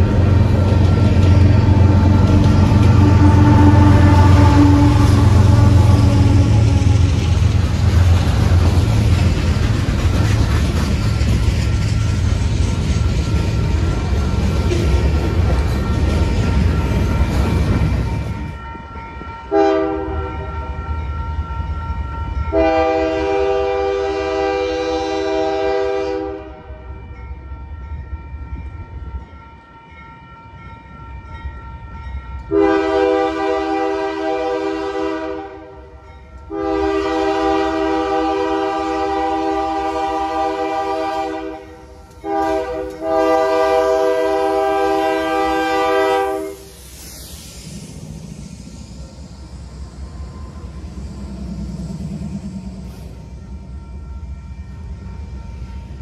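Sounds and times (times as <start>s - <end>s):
freight cars rumbling: 0.0s - 18.9s
locomotive air horn blasts: 1.2s - 7.3s, 19.5s - 20.6s, 22.5s - 26.8s, 32.5s - 35.8s, 36.5s - 46.7s.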